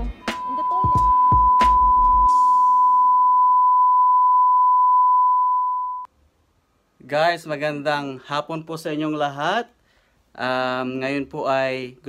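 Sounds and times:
music beat: 0:00.0 - 0:02.8
long electronic beep: 0:00.2 - 0:06.1.

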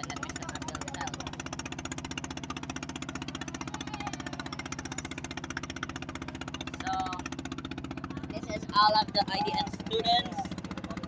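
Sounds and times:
boat engine chugging: 0:00.0 - 0:11.0.

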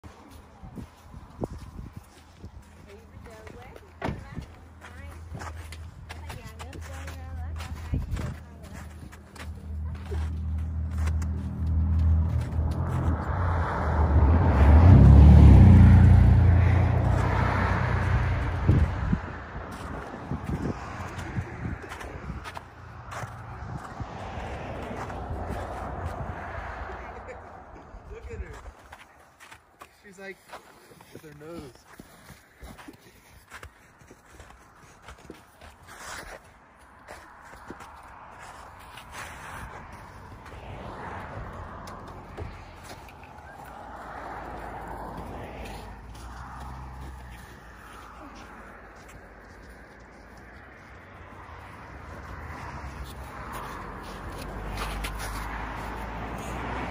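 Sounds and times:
footsteps crunching on snow: 0:00.0 - 0:13.6, 0:17.0 - 0:56.9
car driving past: 0:10.1 - 0:28.3, 0:37.1 - 0:56.9.

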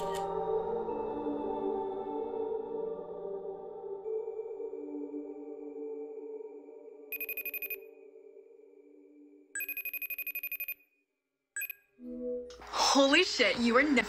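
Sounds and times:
ambient music: 0:00.0 - 0:09.6, 0:12.0 - 0:13.2
electronic phone ringtone trill: 0:07.2 - 0:07.8, 0:09.6 - 0:10.8, 0:11.6 - 0:11.8.

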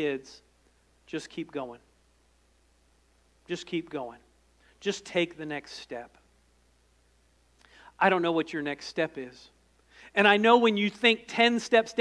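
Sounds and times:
man speaking: 0:00.0 - 0:01.9, 0:03.4 - 0:06.2, 0:08.0 - 0:12.0
faint breath: 0:07.6 - 0:08.0, 0:09.8 - 0:10.2.

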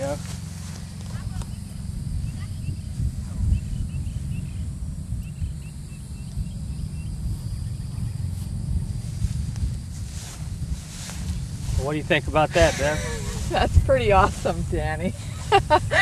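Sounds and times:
wind rumbling on microphone: 0:00.0 - 0:16.0.

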